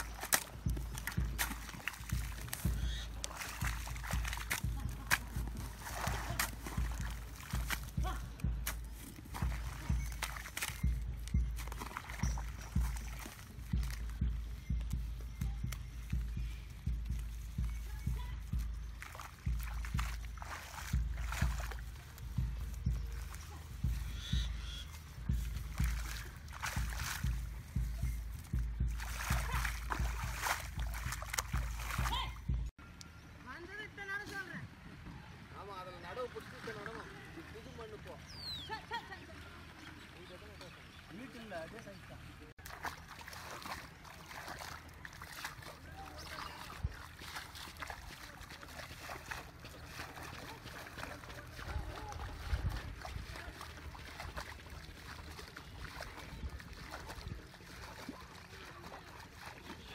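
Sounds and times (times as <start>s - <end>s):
mud slapped by hand: 0.0s - 16.3s, 18.4s - 24.2s, 25.0s - 32.2s
mud and water splashing: 0.0s - 59.9s.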